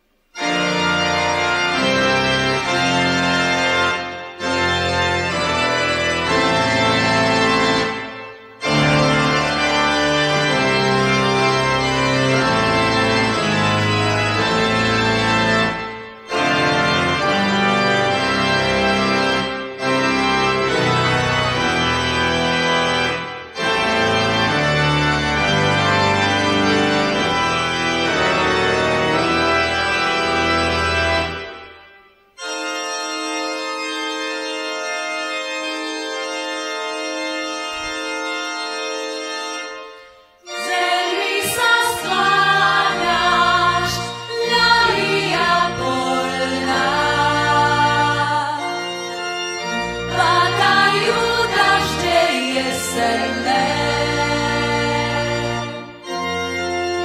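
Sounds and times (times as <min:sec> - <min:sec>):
organ playing chords: 0:00.0 - 0:57.0
voices singing: 0:40.5 - 0:48.8, 0:50.1 - 0:55.7.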